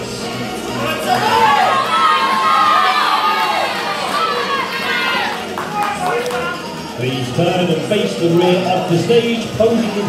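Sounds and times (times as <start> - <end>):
audience cheering and shouting: 0.8 - 7.8.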